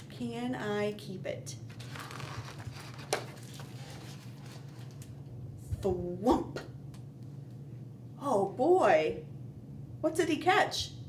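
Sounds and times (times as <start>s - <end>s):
low room hum: 0.0s - 11.0s
book page turning rustle: 1.7s - 5.2s.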